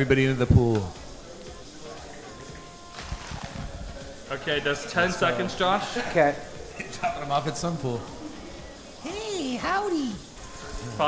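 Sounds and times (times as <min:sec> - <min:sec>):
faint background music: 0:00.0 - 0:11.0
oil bubbling and sizzling in fryer: 0:00.0 - 0:11.0.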